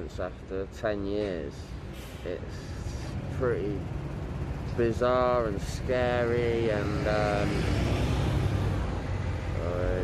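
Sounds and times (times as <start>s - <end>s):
road traffic rumbling: 0.0s - 10.0s.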